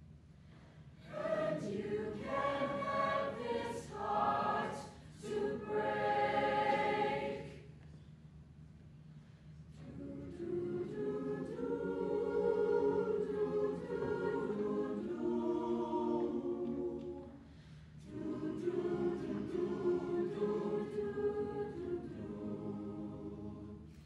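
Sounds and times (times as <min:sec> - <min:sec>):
choir singing: 0:01.0 - 0:07.7, 0:09.8 - 0:17.4, 0:18.0 - 0:24.0.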